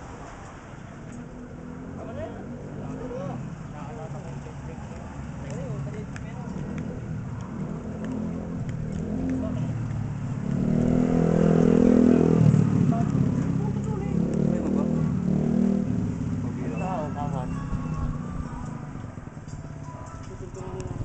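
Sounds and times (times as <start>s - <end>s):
vehicle engine passing: 0.0s - 19.4s.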